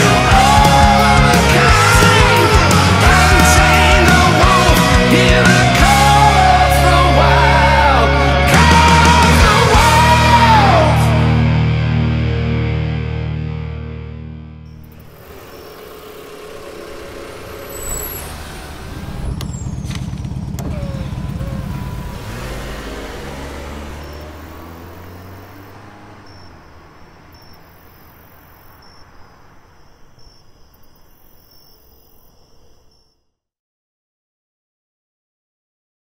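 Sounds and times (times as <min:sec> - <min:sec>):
car engine rumbling: 0:14.6 - 0:30.5.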